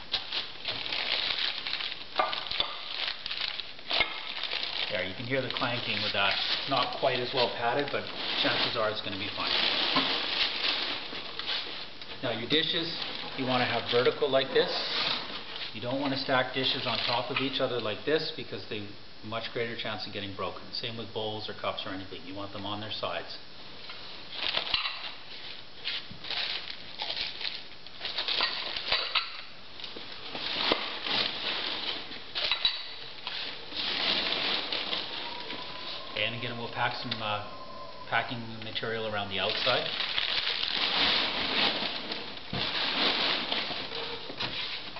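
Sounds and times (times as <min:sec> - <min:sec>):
newspaper rustling and crinkling: 0:00.0 - 0:17.4, 0:24.3 - 0:29.1, 0:29.8 - 0:37.2, 0:38.6 - 0:44.9.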